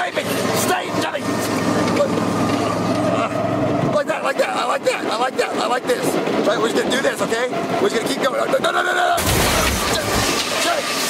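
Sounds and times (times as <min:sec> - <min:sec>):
go-kart engine running: 0:00.0 - 0:11.0.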